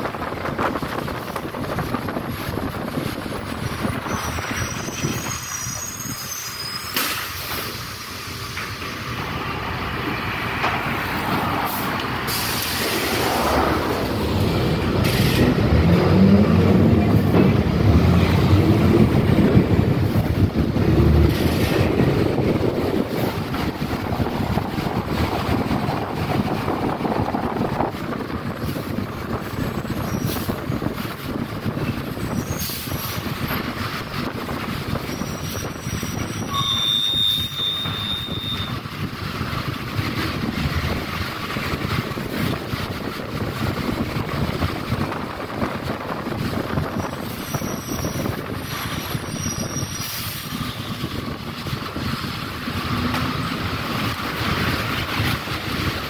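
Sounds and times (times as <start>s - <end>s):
bus body rattling: 0.0s - 56.0s
bus engine: 0.0s - 56.0s
tyres on wet road: 0.0s - 56.0s.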